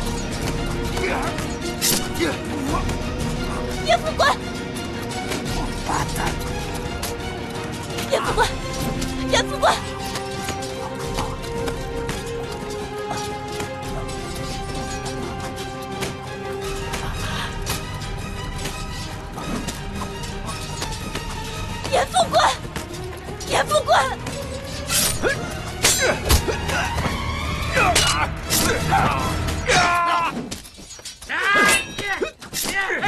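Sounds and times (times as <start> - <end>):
dramatic orchestral music: 0.0 - 33.0.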